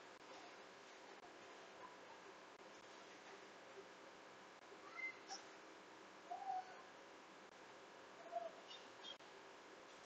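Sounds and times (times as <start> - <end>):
faint room hiss: 0.0 - 10.0
warbling bird call: 8.2 - 9.2
thin high bird calls: 8.2 - 9.3.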